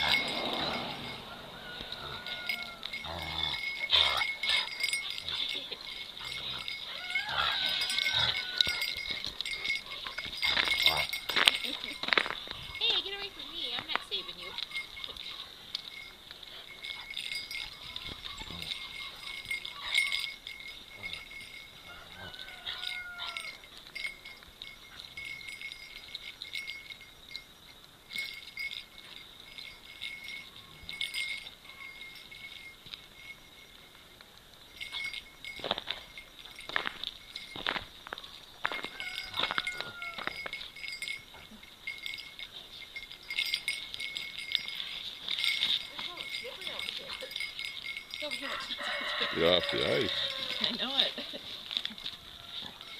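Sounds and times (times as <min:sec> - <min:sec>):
light metallic tinkling: 0:00.0 - 0:52.9.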